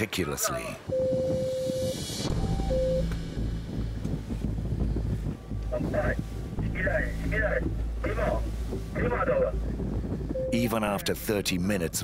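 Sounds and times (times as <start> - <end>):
wind on microphone: 0.8 - 12.0
speedboat engine running: 2.2 - 12.0.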